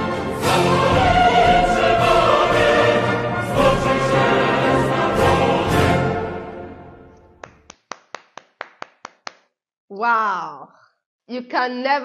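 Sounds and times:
person clapping hands: 7.2 - 9.6.

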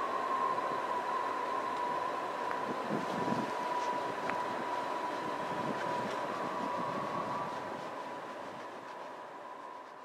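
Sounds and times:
faint ticks: 3.8 - 4.5.

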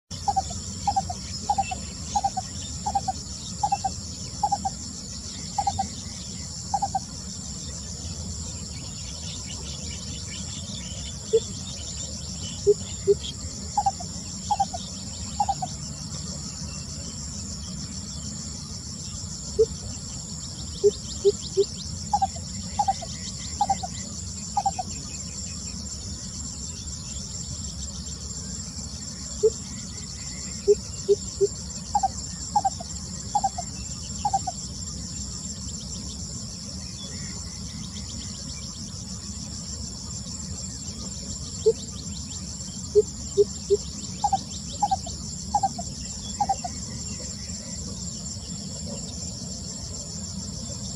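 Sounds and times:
insects chirring: 0.1 - 50.9
bird low hooting: 0.2 - 4.8.

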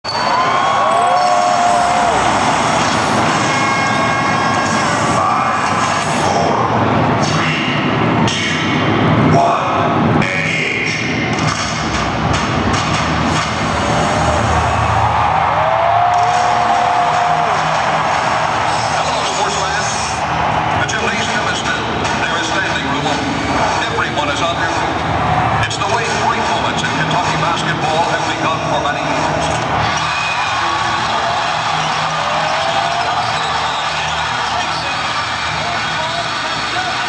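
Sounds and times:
loud arena crowd noise: 0.0 - 37.0
music over sound system: 0.1 - 37.0.

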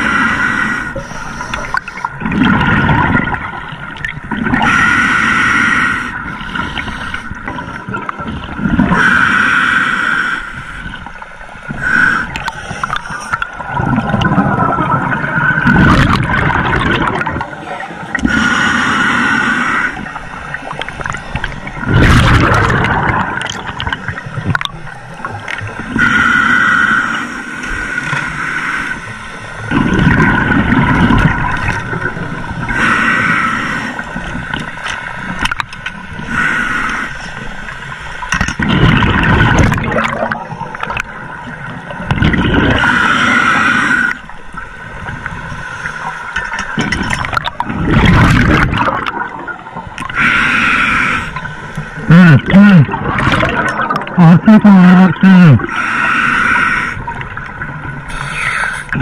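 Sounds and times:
regulator hiss on inhale: 0.0 - 2.1, 4.6 - 7.4, 9.0 - 13.4, 18.2 - 20.5, 25.9 - 29.6, 32.7 - 35.0, 36.2 - 38.2, 42.8 - 44.3, 50.1 - 51.8, 55.7 - 57.2, 58.0 - 59.0
gurgling exhaust bubbles: 13.6 - 17.5, 21.4 - 24.7, 38.5 - 41.1, 46.8 - 50.1, 52.1 - 55.6.

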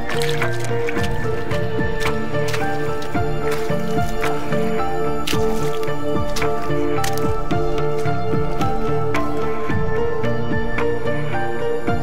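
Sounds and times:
boots squelching through mud: 0.0 - 10.0
background music with beat: 0.0 - 12.0.

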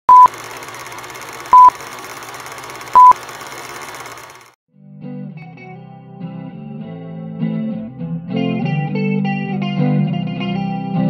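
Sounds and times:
loud beeps: 1.5 - 1.7, 3.0 - 3.2.

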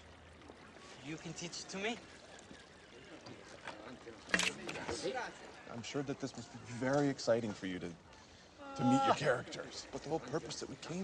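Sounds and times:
fountain water pouring and splashing: 0.0 - 11.0.

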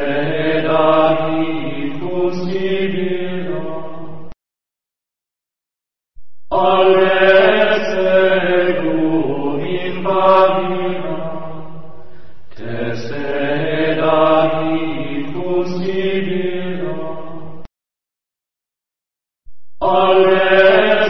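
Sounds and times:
chanted mantra singing: 0.0 - 4.3, 6.5 - 17.6, 19.8 - 21.0.

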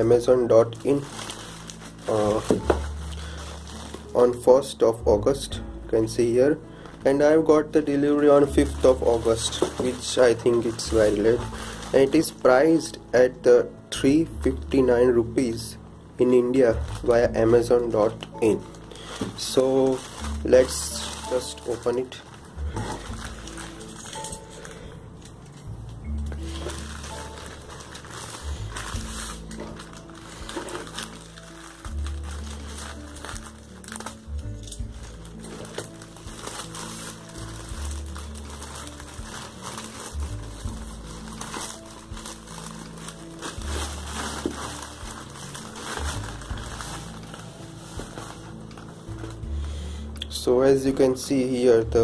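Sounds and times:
plastic bag crinkling and tearing: 0.0 - 4.8, 6.7 - 13.0, 16.4 - 49.8
background music with bass notes: 0.0 - 52.0.

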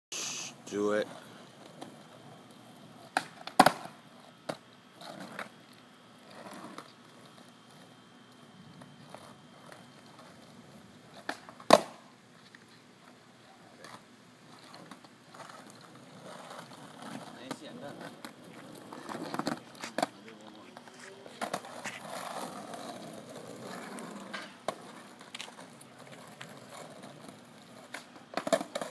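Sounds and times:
skateboard clacks on asphalt: 1.1 - 28.9.

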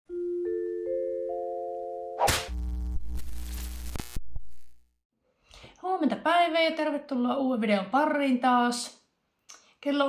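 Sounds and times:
buzzing glitch electronic tone: 2.3 - 4.8.

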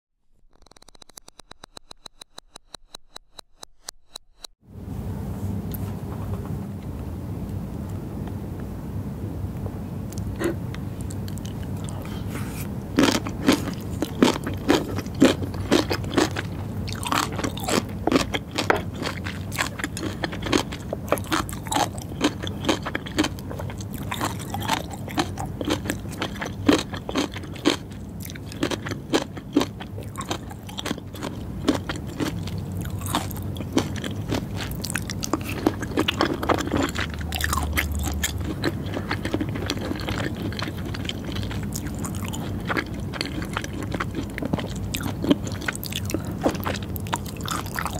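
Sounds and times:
chewing crunchy pickles: 10.1 - 47.9.

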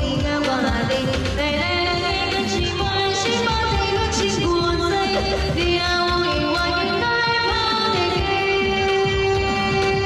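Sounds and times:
pop backing track with drum beat: 0.0 - 10.0
woman singing into microphone: 0.0 - 10.0.

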